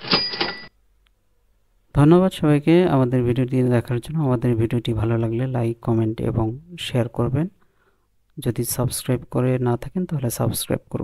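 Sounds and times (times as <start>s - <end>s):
ringing tone: 0.0s - 0.7s.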